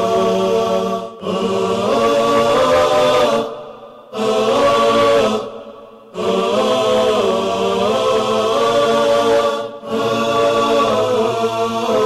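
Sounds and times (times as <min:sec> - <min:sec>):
voices chanting long notes: 0:00.0 - 0:12.0.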